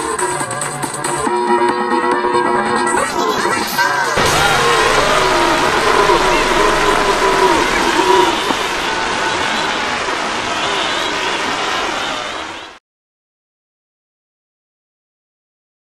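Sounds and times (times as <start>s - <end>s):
distorted warbling voices: 3.1s - 11.1s.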